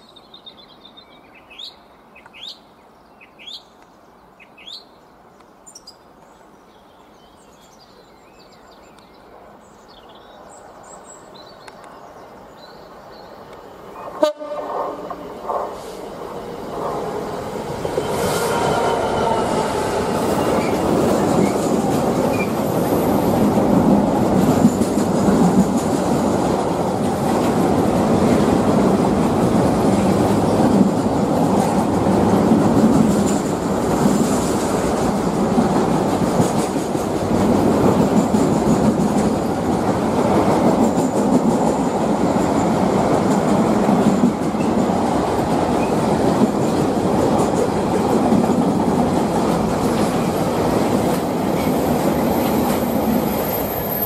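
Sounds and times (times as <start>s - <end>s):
freight train rumbling past: 12.4s - 54.0s.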